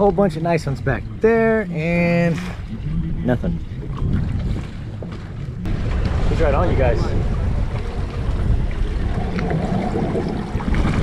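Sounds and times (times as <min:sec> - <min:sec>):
water washing around boat: 0:00.0 - 0:11.0
wind buffeting microphone: 0:00.0 - 0:11.0.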